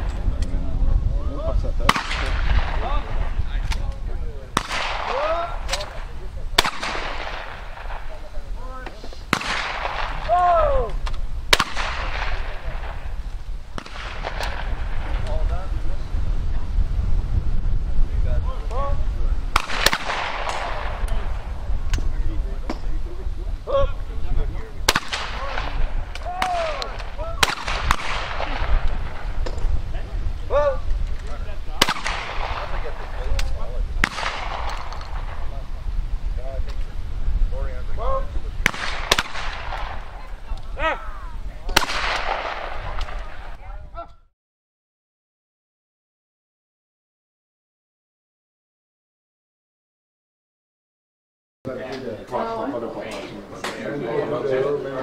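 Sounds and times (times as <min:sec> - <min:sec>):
shotgun shots with echo: 0:01.8 - 0:03.9, 0:04.5 - 0:08.2, 0:09.3 - 0:10.6, 0:11.5 - 0:13.1, 0:13.7 - 0:15.4, 0:19.5 - 0:21.5, 0:24.8 - 0:29.6, 0:31.7 - 0:35.6, 0:38.6 - 0:40.3, 0:41.7 - 0:43.7.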